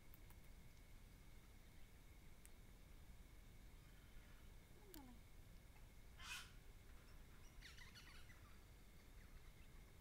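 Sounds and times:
bird chirping: 0:06.2 - 0:10.0.

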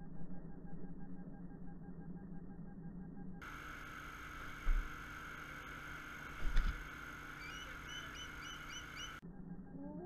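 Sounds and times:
steady hum: 0:00.0 - 0:10.0
eagle chirping: 0:07.3 - 0:09.2.

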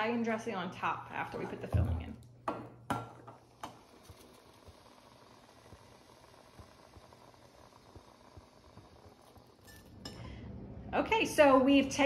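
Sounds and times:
water simmering in a pot: 0:03.0 - 0:10.4.

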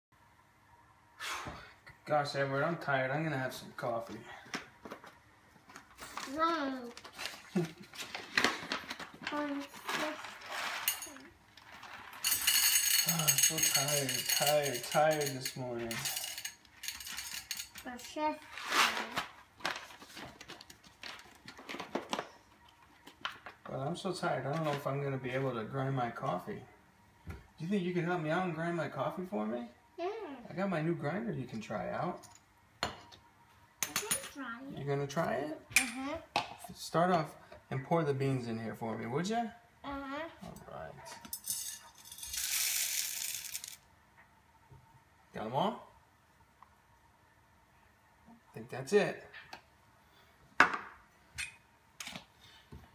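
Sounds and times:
paper bag crinkling: 0:06.0 - 0:12.2
coffee beans rattling into grinder: 0:09.7 - 0:17.9, 0:41.4 - 0:43.8.

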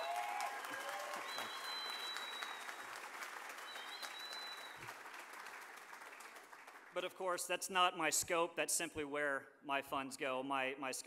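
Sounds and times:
high whistle: 0:00.0 - 0:02.8, 0:03.6 - 0:04.9
audience applauding: 0:00.0 - 0:07.2.

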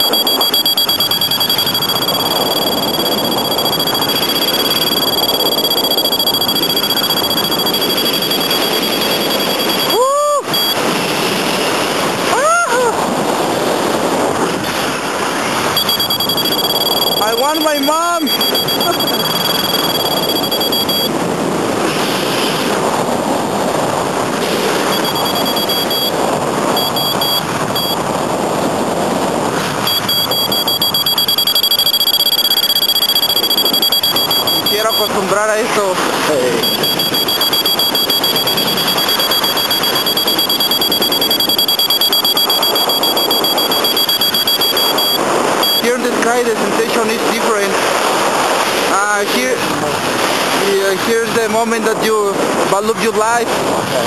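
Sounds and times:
steady high electronic tone: 0:00.0 - 0:10.9, 0:15.7 - 0:21.1, 0:24.5 - 0:28.0, 0:29.8 - 0:47.6
wind rushing over microphone: 0:00.0 - 0:54.0
rising and falling whoops: 0:09.9 - 0:10.5.

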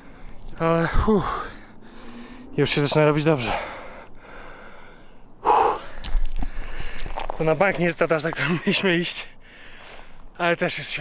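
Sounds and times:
man gasping: 0:03.5 - 0:07.1.

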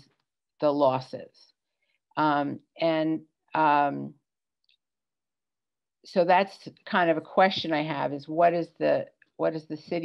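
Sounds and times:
woman speaking: 0:00.6 - 0:01.4, 0:02.2 - 0:04.1, 0:06.1 - 0:10.0.

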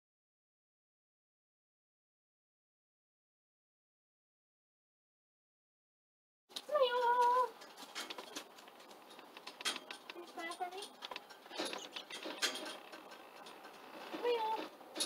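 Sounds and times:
person's high-pitched voice: 0:06.6 - 0:07.6, 0:10.1 - 0:10.9, 0:14.2 - 0:14.7
light clicks and knocks: 0:06.6 - 0:15.0.

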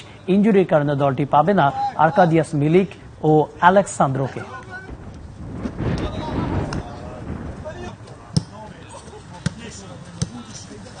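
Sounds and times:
football kick thuds: 0:08.3 - 0:08.6.

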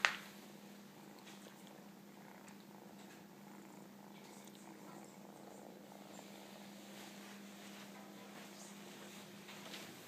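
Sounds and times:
kitten purring: 0:00.0 - 0:09.4.

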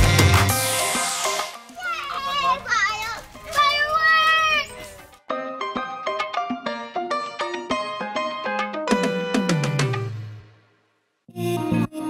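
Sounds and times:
children calling out excitedly: 0:01.6 - 0:05.2.

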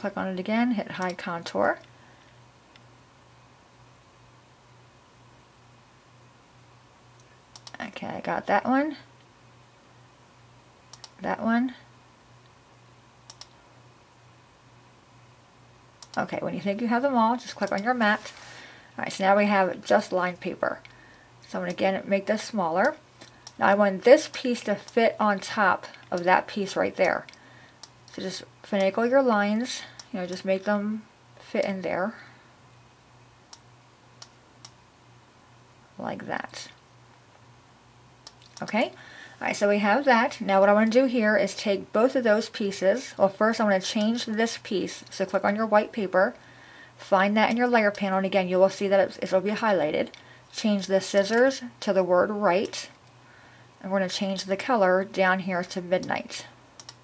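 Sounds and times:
low steady hum: 0:00.0 - 0:57.0
computer mouse clicks: 0:07.2 - 0:07.8, 0:10.9 - 0:11.2, 0:13.2 - 0:13.6, 0:16.0 - 0:16.3, 0:17.6 - 0:17.9, 0:33.5 - 0:34.8, 0:51.1 - 0:51.4, 0:56.8 - 0:57.0.

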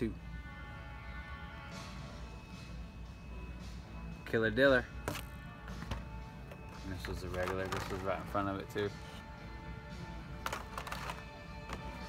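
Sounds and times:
quiet background music: 0:00.0 - 0:12.0
plastic packaging knocking on metal hooks: 0:07.0 - 0:08.2, 0:10.4 - 0:12.0.

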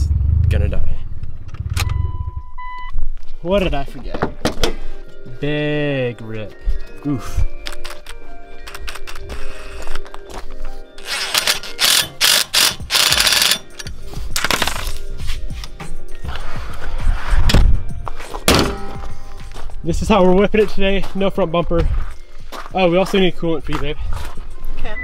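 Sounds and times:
background music: 0:01.7 - 0:25.0
impact driver bursts: 0:11.1 - 0:13.6.

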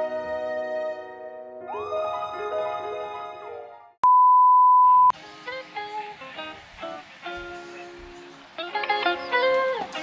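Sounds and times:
light music with plucked notes: 0:05.2 - 0:10.0.

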